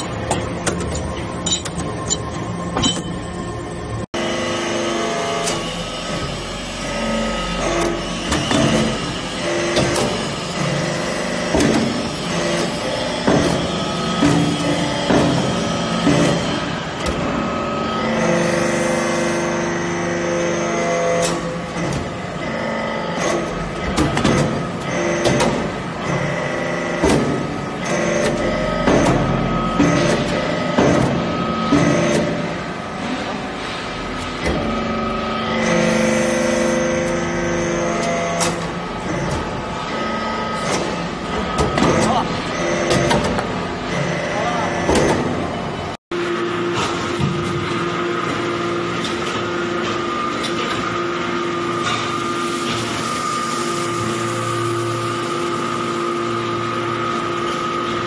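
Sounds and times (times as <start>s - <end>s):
press knocking and clanking: 0.0s - 3.3s, 7.7s - 17.5s, 23.2s - 32.8s, 40.6s - 45.6s
hydraulic power unit humming: 0.0s - 58.0s.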